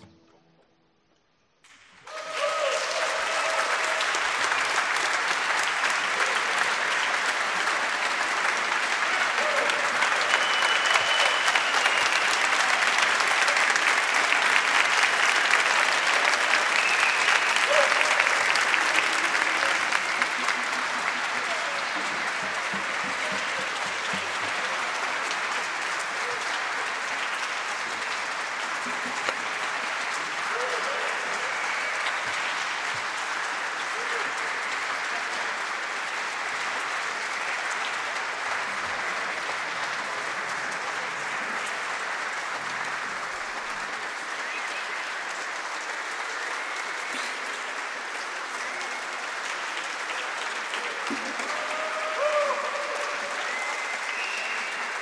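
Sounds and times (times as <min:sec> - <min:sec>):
large audience applauding: 0:02.0 - 0:55.0.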